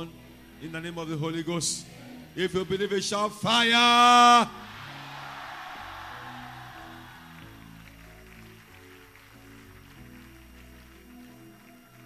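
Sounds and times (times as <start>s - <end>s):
slow low held music: 0.0s - 12.0s
congregation noise: 2.3s - 11.0s.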